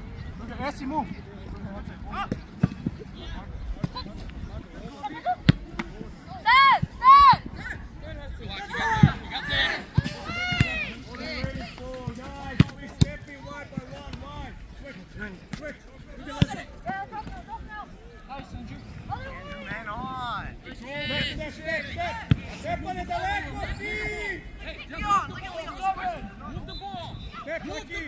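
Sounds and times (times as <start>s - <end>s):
players shouting: 5.0s - 28.0s
soccer ball kicks: 5.4s - 6.0s, 9.0s - 14.4s, 16.3s - 17.5s, 22.2s - 22.7s.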